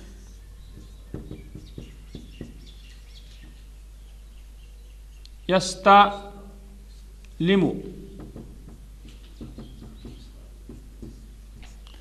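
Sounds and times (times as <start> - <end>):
marker squeaking on whiteboard: 0.0 - 3.7, 8.1 - 12.0
steady low hum: 0.0 - 12.0
marker tapping on whiteboard: 0.7 - 3.7, 8.0 - 11.8.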